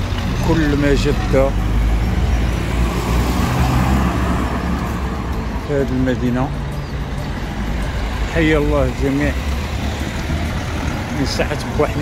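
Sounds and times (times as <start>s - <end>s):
car engines: 0.0s - 12.0s.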